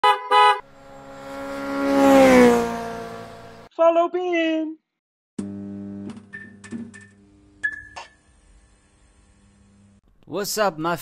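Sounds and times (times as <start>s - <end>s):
horn beeps: 0.0s - 0.6s
vehicle passing by: 0.6s - 3.7s
voice: 3.8s - 4.8s, 10.3s - 11.0s.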